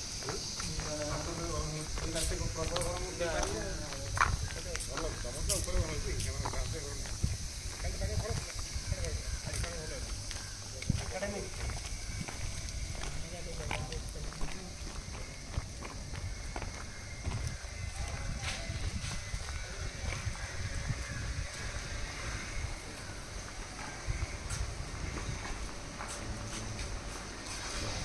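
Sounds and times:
footsteps on concrete: 0:00.0 - 0:22.0, 0:22.6 - 0:28.0.

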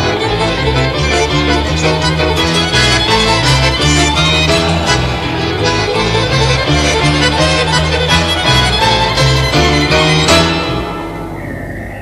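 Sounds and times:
accordion: 0:00.0 - 0:11.9.

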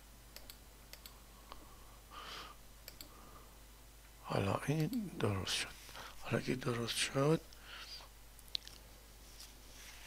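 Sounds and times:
low mains hum: 0:00.0 - 0:10.0
computer mouse clicks: 0:00.3 - 0:01.2, 0:02.8 - 0:03.1.

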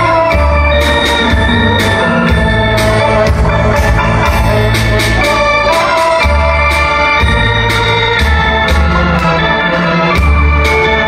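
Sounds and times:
bass line: 0:00.0 - 0:11.0
electronic keyboard organ chords: 0:00.0 - 0:11.0
percussion hits: 0:00.0 - 0:11.0.

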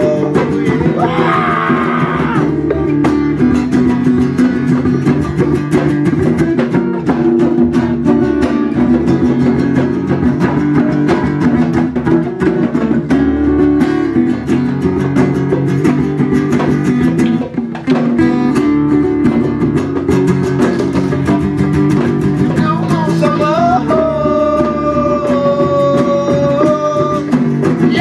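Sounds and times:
acoustic guitar strumming: 0:00.0 - 0:28.0.

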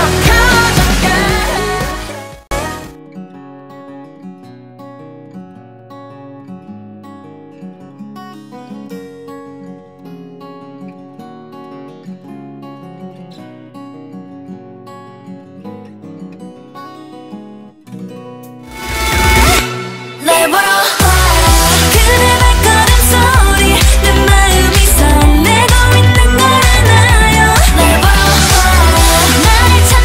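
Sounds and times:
plucked acoustic guitar music: 0:00.0 - 0:30.0.

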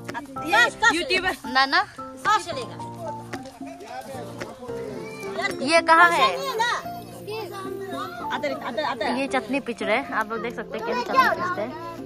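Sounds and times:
children calling and chattering: 0:00.0 - 0:12.0
soft background music: 0:00.0 - 0:12.0.

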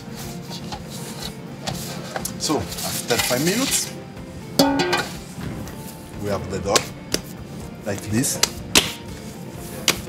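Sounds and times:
guitar chord strummed: 0:04.6 - 0:05.3.

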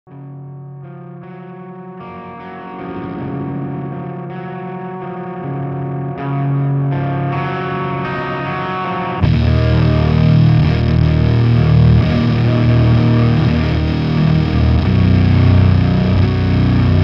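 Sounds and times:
distorted electric guitar: 0:00.1 - 0:17.0.

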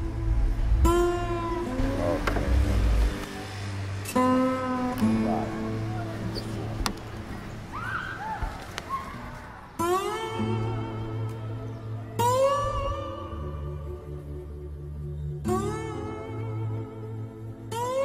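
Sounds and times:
slow blues guitar: 0:00.8 - 0:07.7, 0:09.8 - 0:18.0.

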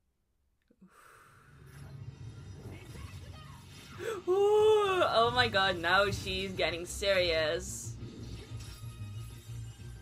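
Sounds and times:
woman speaking: 0:04.3 - 0:07.9.

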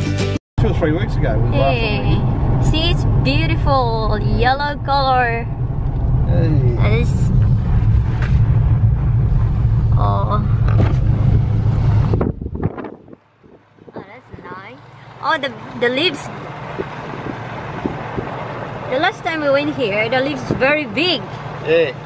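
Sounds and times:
people talking: 0:00.6 - 0:05.5, 0:06.3 - 0:07.4, 0:10.0 - 0:10.5, 0:14.0 - 0:16.4, 0:18.9 - 0:22.0
car cabin road and engine rumble: 0:00.6 - 0:22.0.

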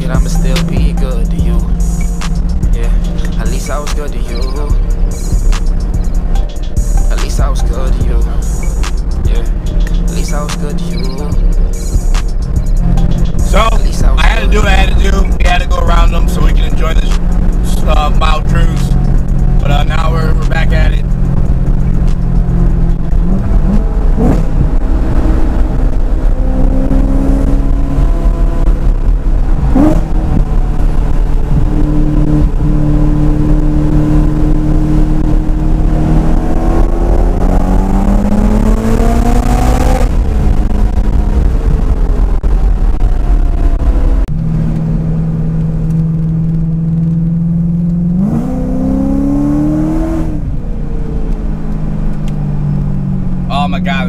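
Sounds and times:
car engine accelerating: 0:00.0 - 0:54.0.

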